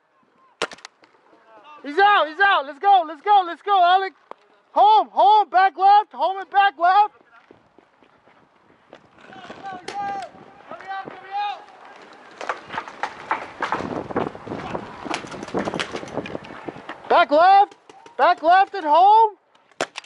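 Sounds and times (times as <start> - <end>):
paintball markers firing: 0.6 - 1.2, 19.6 - 20.0
scuffling on dirt: 7.1 - 17.1
distant shouting: 9.2 - 12.7.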